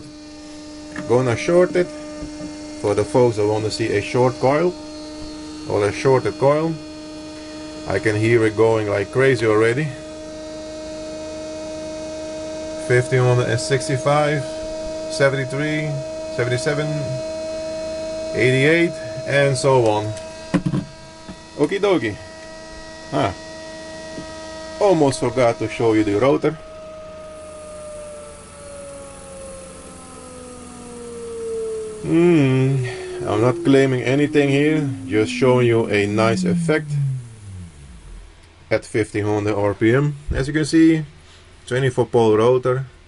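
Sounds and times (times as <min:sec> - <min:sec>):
electric motor humming: 0:00.0 - 0:38.6.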